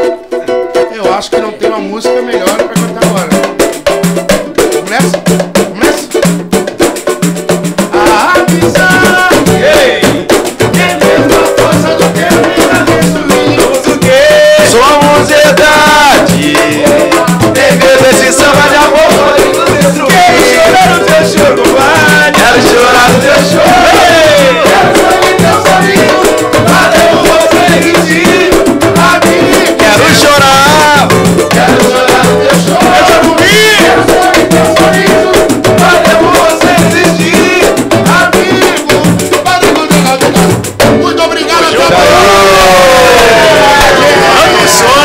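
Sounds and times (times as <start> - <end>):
several voices singing samba: 0.0 - 45.0
steady beat: 0.0 - 45.0
rattling shaker percussion: 2.0 - 45.0
people clapping: 41.8 - 45.0
hand claps: 42.6 - 44.0.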